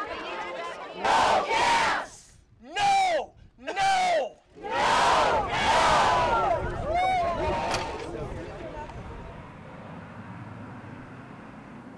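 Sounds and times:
crowd shouting in response: 0.0 - 2.2, 4.6 - 8.0
man shouting a call: 2.6 - 4.4.

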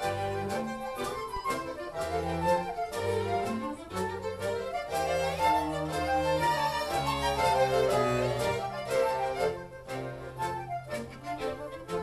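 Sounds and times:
accordion orchestra with strings: 0.0 - 12.0.

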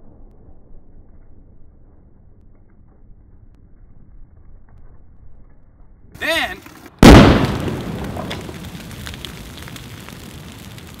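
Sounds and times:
scattered crackles: 0.0 - 11.0
loud explosion boom: 7.0 - 8.9.

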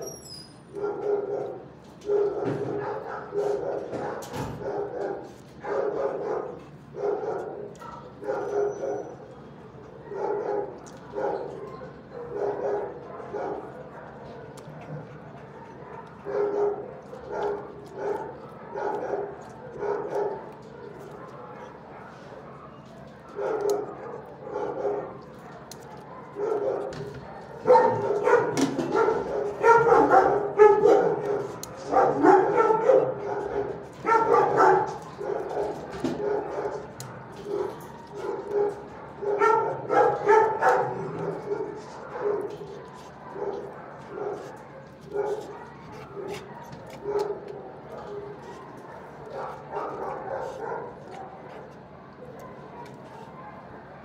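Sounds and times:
dogs barking: 0.6 - 54.0.

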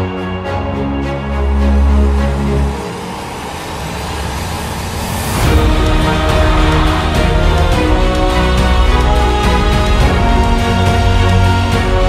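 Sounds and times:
rushing noise with low rumble: 2.0 - 12.0.

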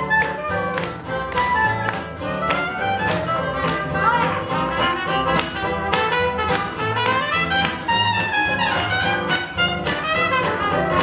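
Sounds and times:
live dance band playing: 0.0 - 11.0
violin: 0.0 - 11.0.

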